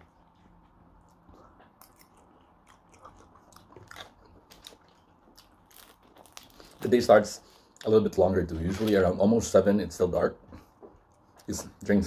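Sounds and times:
chewing with mouth closed: 0:00.2 - 0:06.8.

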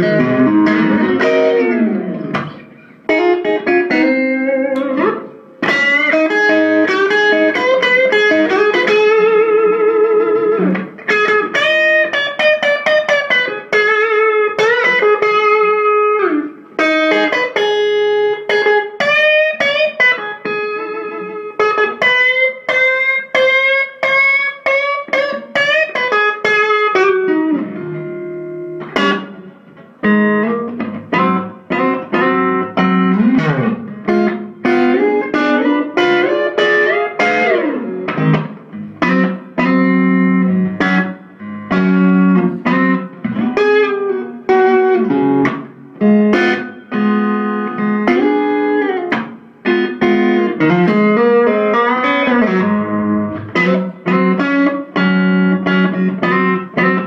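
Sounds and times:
overdriven electric guitar lead: 0:00.0 - 0:57.0.

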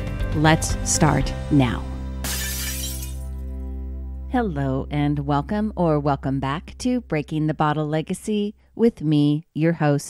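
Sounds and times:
background music: 0:00.0 - 0:08.2
glass shattering: 0:02.2 - 0:03.4.

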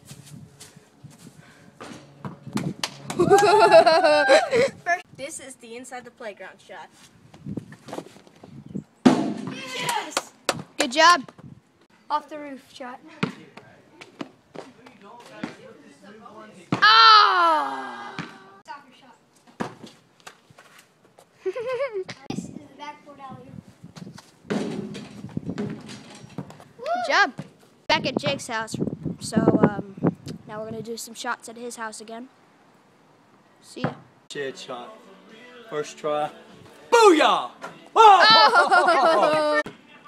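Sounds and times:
person laughing loudly: 0:03.2 - 0:04.9, 0:21.4 - 0:22.1, 0:38.0 - 0:39.6
child speaking: 0:04.8 - 0:06.9, 0:22.2 - 0:23.6, 0:27.9 - 0:32.3
child shouting: 0:09.5 - 0:10.2, 0:16.8 - 0:18.7, 0:26.8 - 0:27.4, 0:38.0 - 0:39.7.

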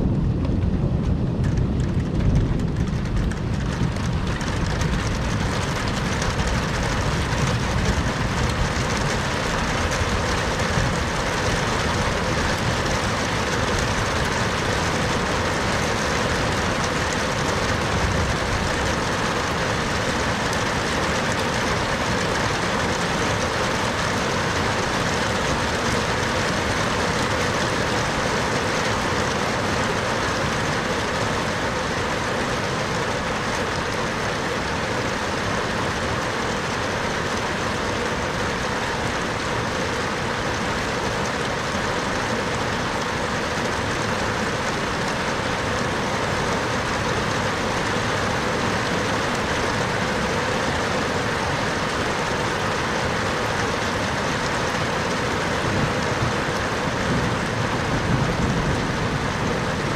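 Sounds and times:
low rumble of thunder: 0:00.0 - 0:23.0, 0:57.0 - 0:59.9
heavy rain falling on a street: 0:00.0 - 0:59.9.

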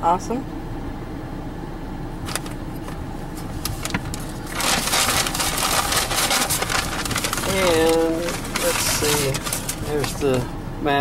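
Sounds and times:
car interior hum: 0:00.0 - 0:11.0
paper bag rustling: 0:02.3 - 0:10.5.

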